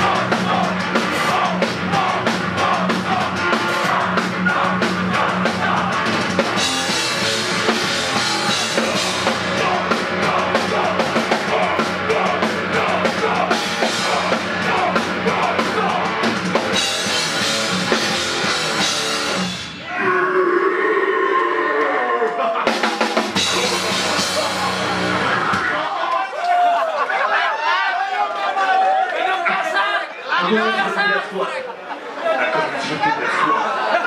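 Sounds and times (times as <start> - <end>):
drum kit with cymbals: 0.0 - 19.9, 22.6 - 25.8
bass guitar: 0.0 - 20.3, 23.2 - 25.9
crowd shouting and chattering: 0.0 - 20.7, 21.3 - 34.0
distorted guitars: 0.0 - 25.9.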